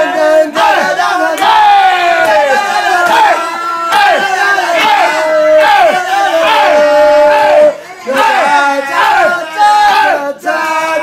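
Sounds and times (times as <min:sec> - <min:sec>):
group singing and yelling: 0:00.0 - 0:11.0.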